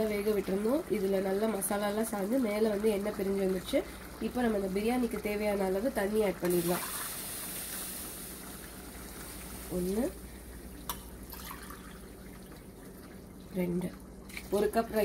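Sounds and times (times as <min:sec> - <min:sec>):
water hissing in hot pressure cooker: 0:01.6 - 0:10.4.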